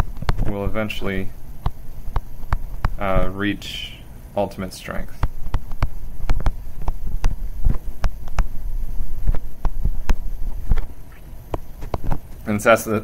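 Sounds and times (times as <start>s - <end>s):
steady low hum: 0.0s - 13.0s
pen scratching and tapping on paper: 5.2s - 8.5s.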